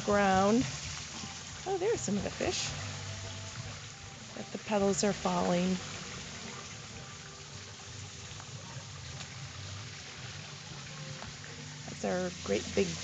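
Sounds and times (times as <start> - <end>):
water trickling in pond: 0.0 - 13.0.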